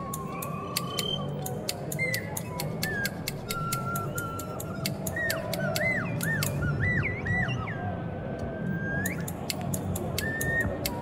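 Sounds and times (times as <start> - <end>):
scissors snipping: 0.0 - 6.6
slide whistle swooping: 0.0 - 7.8, 10.2 - 11.0.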